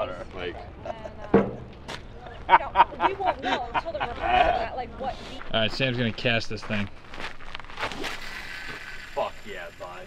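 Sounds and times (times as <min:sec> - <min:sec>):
fishing line whirring off reel: 0:07.9 - 0:10.0.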